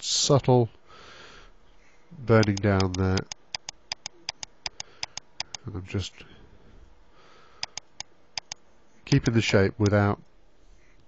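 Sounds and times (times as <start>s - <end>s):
computer mouse clicks: 2.4s - 5.6s, 7.6s - 8.6s.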